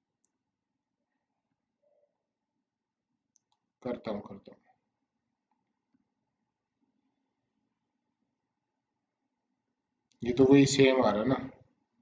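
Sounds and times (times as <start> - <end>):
man speaking: 3.8 - 4.6, 10.2 - 11.6.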